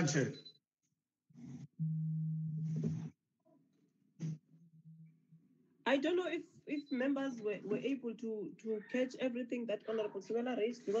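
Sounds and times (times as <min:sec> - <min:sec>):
low buzzing tone: 0:01.8 - 0:03.1.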